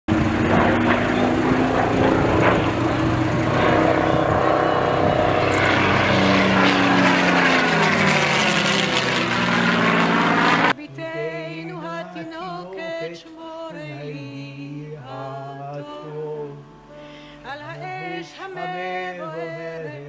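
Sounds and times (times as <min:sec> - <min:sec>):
propeller plane engine passing: 0:00.1 - 0:10.8.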